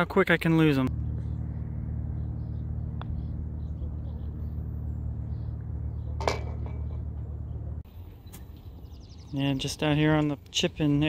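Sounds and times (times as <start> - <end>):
low machine hum: 0.2 - 9.6.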